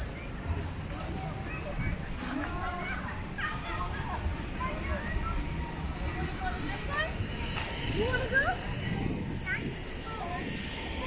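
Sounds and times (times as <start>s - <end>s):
distant voices: 0.0s - 11.0s
wind rumble on microphone: 3.6s - 11.0s.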